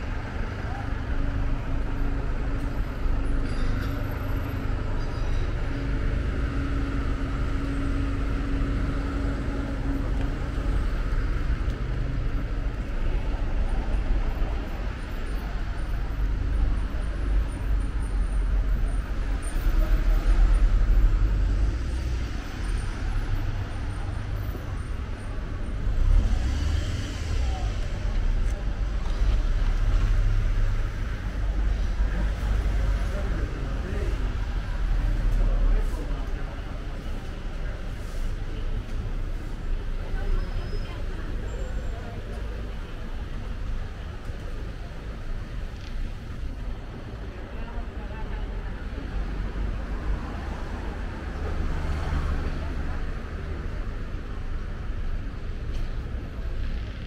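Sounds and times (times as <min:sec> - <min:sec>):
road traffic rumble: 0:00.0 - 0:57.0
vehicles passing close by: 0:00.0 - 0:57.0.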